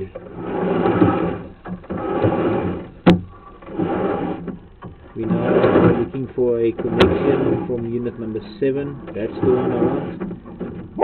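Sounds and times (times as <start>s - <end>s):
push rod sliding in pipe: 0.0s - 11.0s.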